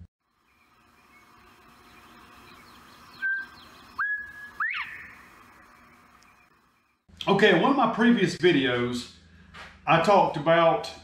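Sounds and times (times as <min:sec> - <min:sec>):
faint outdoor hiss: 0:00.2 - 0:10.8
whistled notes: 0:03.1 - 0:05.2.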